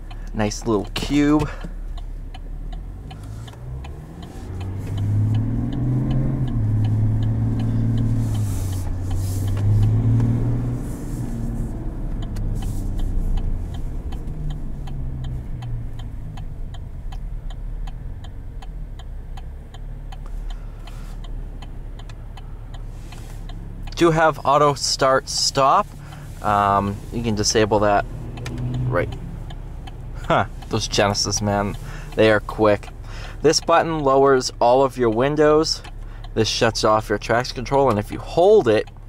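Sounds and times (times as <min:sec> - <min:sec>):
diesel engine accelerating: 0:00.0 - 0:39.0
fast regular ticking: 0:00.0 - 0:39.0.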